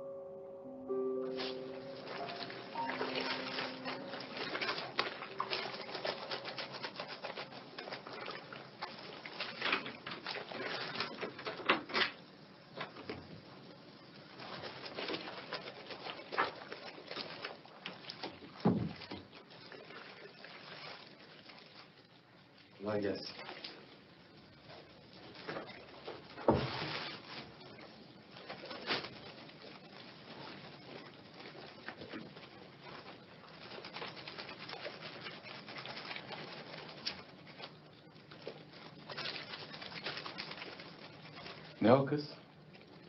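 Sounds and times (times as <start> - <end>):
music: 0.0 - 6.2
rustling and rubbing: 1.4 - 12.4, 14.2 - 42.0.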